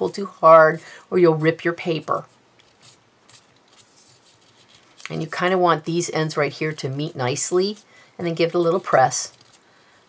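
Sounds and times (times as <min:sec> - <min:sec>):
paper strip rustling: 0:02.2 - 0:05.4, 0:06.7 - 0:10.0.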